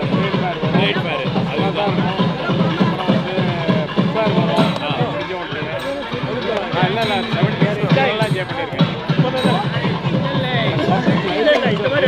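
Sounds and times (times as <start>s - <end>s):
fast drum strokes: 0.0s - 12.0s.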